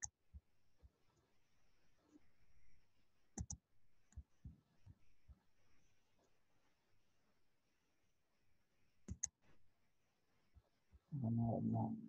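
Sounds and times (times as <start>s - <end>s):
computer mouse clicks: 3.4s - 4.3s, 9.0s - 9.4s.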